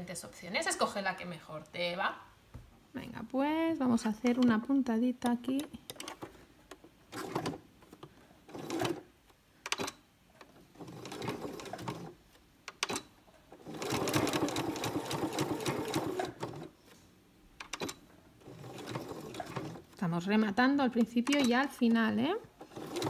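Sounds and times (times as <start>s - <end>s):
sewing machine stitching: 7.1s - 7.7s, 8.5s - 9.1s, 9.7s - 12.2s, 12.8s - 16.7s, 17.6s - 20.0s, 21.0s - 23.0s
sewing machine clicks: 9.6s - 16.7s, 17.6s - 19.9s, 21.0s - 23.0s.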